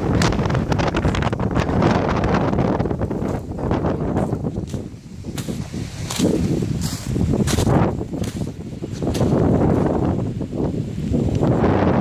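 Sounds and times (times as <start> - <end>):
wind blowing across microphone: 0.0 - 12.0.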